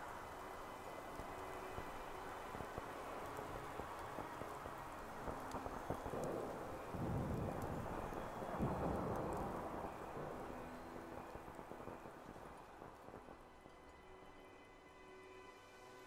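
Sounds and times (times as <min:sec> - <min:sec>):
low wind gust: 0:00.0 - 0:16.0.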